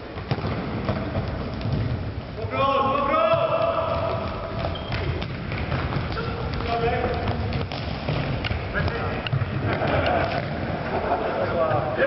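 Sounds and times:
ball kick: 0.0s - 2.3s, 3.2s - 10.8s
players' footsteps: 0.0s - 12.0s.

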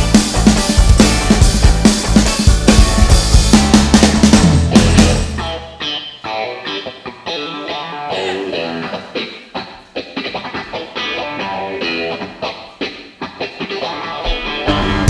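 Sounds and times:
backing instruments: 0.0s - 5.9s
electric guitar picked melody: 0.0s - 15.0s.

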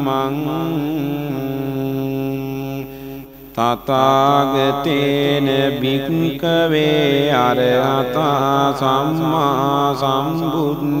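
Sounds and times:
person chanting: 0.0s - 11.0s.

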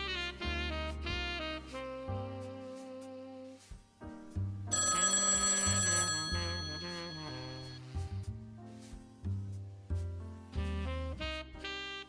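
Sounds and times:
background music: 0.0s - 12.0s
telephone ringing: 4.7s - 8.0s.

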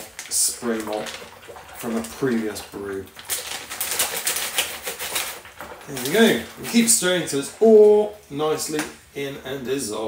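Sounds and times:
foil-lined bag crackling: 0.0s - 7.8s
plastic spoon stirring liquid: 0.0s - 9.0s.

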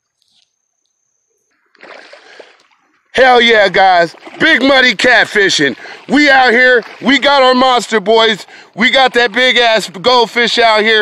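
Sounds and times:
water splashing and sloshing: 1.7s - 11.0s.

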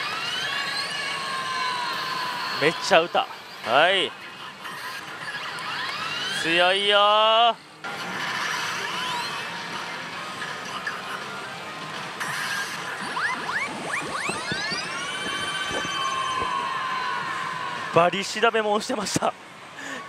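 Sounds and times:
rising electronic sweeps: 12.2s - 17.7s.

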